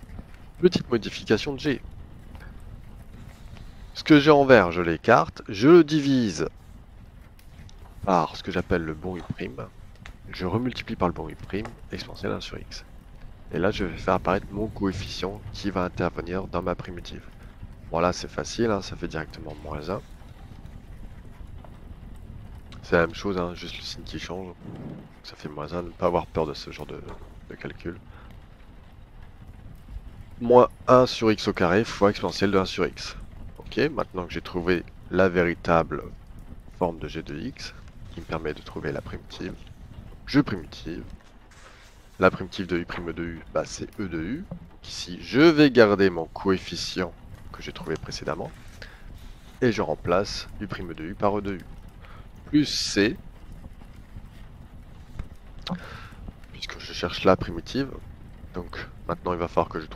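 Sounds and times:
low rumble: 0.0s - 59.9s.

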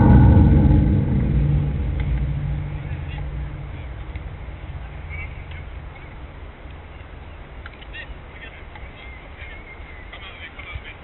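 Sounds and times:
engine running: 0.0s - 6.7s.

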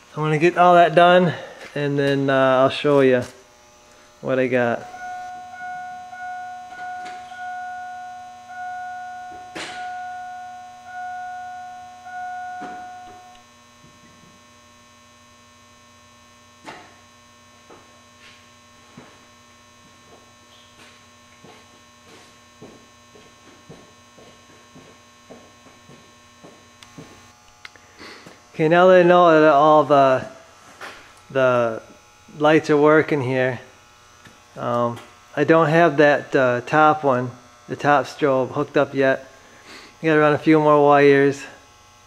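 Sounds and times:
steady electrical hum: 0.0s - 42.0s
electronic warning chime: 4.7s - 13.4s.

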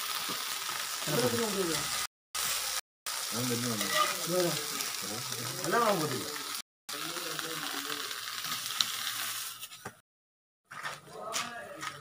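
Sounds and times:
leaves sizzling on hot griddle: 0.0s - 9.9s.

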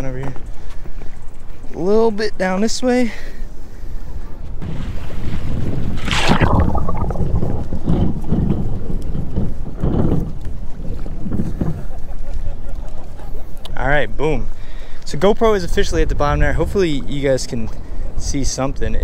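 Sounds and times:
muffled underwater rumbling: 4.6s - 12.3s
rush of water: 4.7s - 8.0s.

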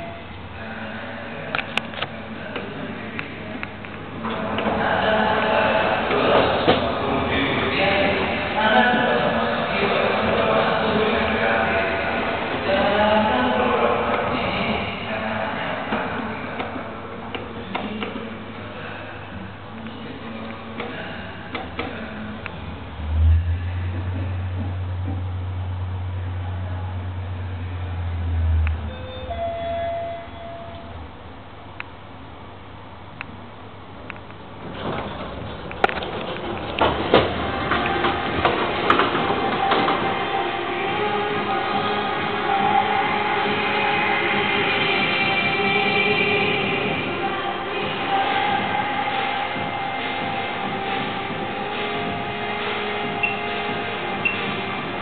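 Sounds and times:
lift car travel hum: 0.0s - 55.0s
machinery whining tones: 20.0s - 31.4s
electronic two-tone arrival chime: 28.8s - 31.0s
short high beep: 28.8s - 31.0s.

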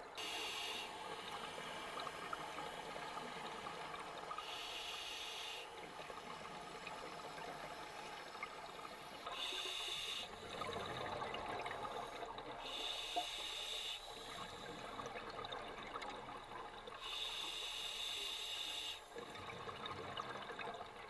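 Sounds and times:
bubbling and crackle: 0.0s - 13.0s, 14.1s - 17.1s, 19.0s - 21.0s
hissing regulator breaths: 0.2s - 10.5s, 12.0s - 14.8s, 17.0s - 19.1s.

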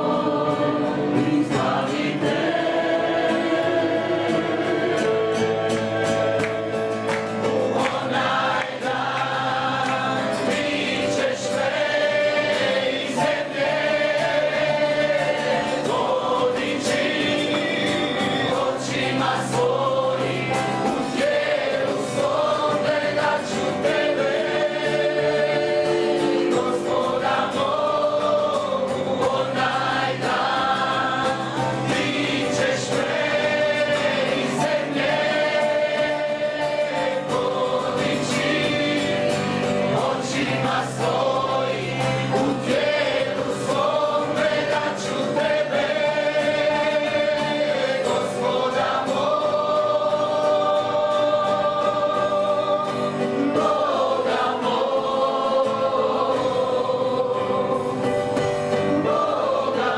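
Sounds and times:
group singing worship song: 0.0s - 59.9s
keyboard: 0.0s - 59.9s
strummed acoustic guitars: 0.0s - 59.9s.

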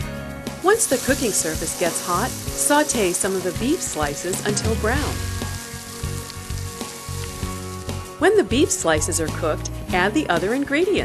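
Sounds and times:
meat sizzling in hot oil: 0.5s - 9.9s.

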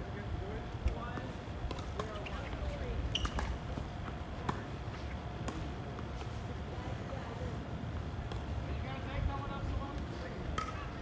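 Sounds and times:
tennis balls bouncing and struck: 1.0s - 6.1s, 10.4s - 11.0s.

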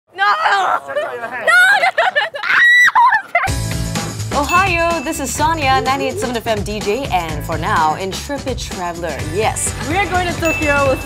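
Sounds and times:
woman squealing and laughing: 0.2s - 3.6s
background music with steady beat: 3.5s - 11.0s.

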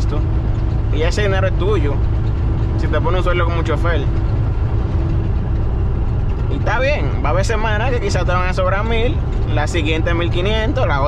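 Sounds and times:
truck engine and tyres droning: 0.0s - 11.0s.

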